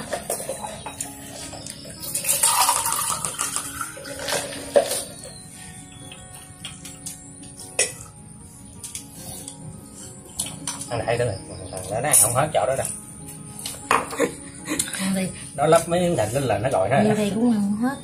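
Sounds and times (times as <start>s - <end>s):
glass and dishes clinking: 0.0s - 5.4s, 7.5s - 8.2s, 13.6s - 14.4s
water pouring into a glass: 2.0s - 5.1s.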